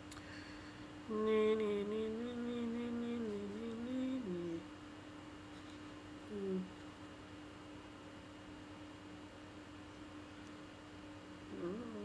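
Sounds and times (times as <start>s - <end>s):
woman humming: 1.1s - 4.7s, 6.3s - 6.8s, 11.5s - 12.0s.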